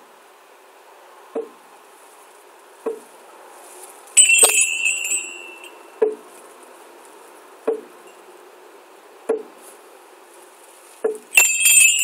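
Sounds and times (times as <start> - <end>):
metallic ring with rattle: 4.2 - 6.4, 11.2 - 12.0.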